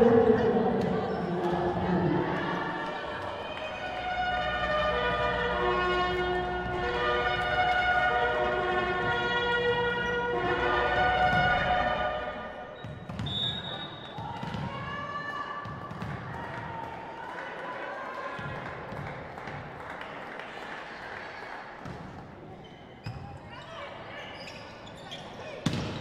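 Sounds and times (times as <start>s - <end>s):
referee whistle blast: 12.8s - 14.2s.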